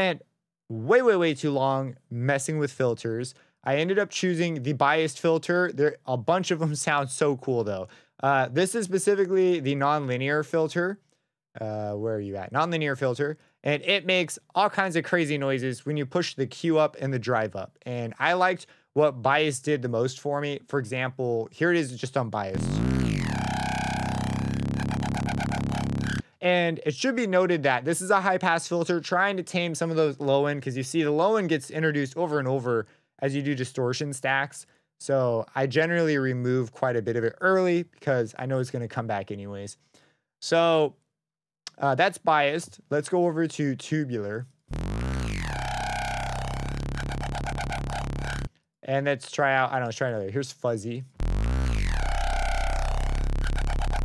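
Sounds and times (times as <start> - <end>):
buzzy synthesized bass note: 22.6 - 26.3, 44.7 - 48.5, 51.2 - 54.0.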